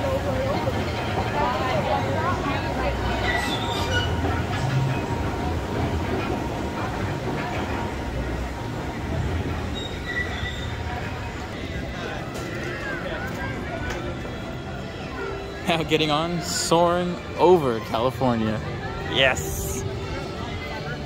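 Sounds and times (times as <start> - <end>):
faint voices: 0.0 - 21.0.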